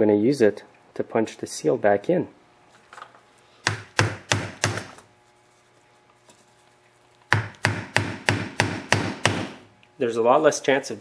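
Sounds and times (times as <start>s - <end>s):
hammer striking plastic pipe: 3.6s - 5.0s, 7.3s - 9.6s.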